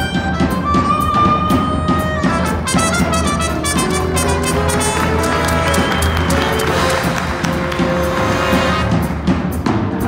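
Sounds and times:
trumpet playing: 0.0 - 9.1
big band playing swing: 0.0 - 10.0.

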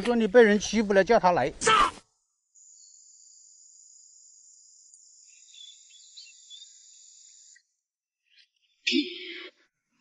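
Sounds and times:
insects singing: 2.4 - 9.1.

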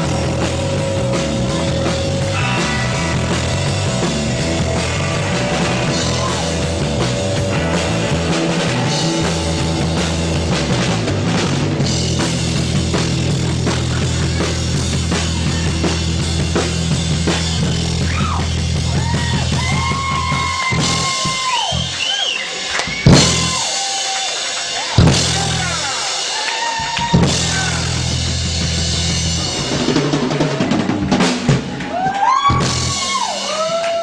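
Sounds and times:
wailing sliding guitar notes: 0.0 - 12.7
bass and guitar drone: 0.0 - 23.8, 24.8 - 26.1, 27.0 - 34.0
drum kit crashes: 0.0 - 33.8.

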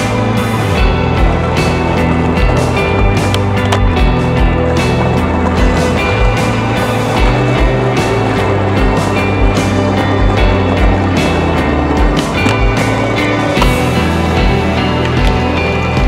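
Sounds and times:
music with bass beat: 0.0 - 16.0
skateboard clacking: 0.0 - 16.0
skateboard wheels rolling on concrete: 0.0 - 16.0.

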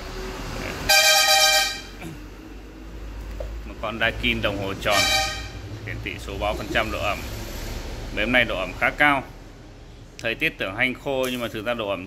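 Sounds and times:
vehicle horn honking: 0.9 - 2.0, 4.9 - 5.7.

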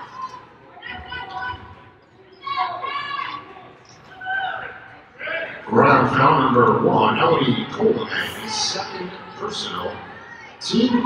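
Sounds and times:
loud voices: 0.0 - 11.0.

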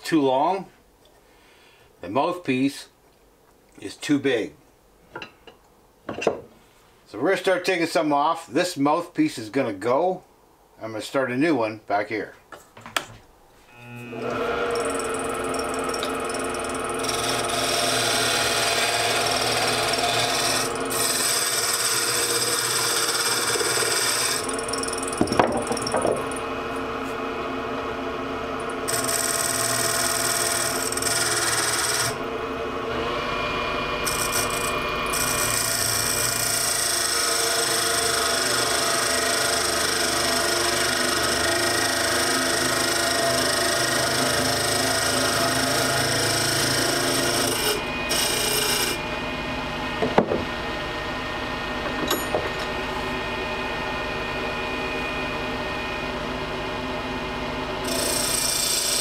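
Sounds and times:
wood lathe running: 13.8 - 49.3, 57.8 - 59.0
turning tool scraping wood: 14.0 - 26.4, 28.6 - 32.2, 34.0 - 49.0, 57.8 - 59.0.

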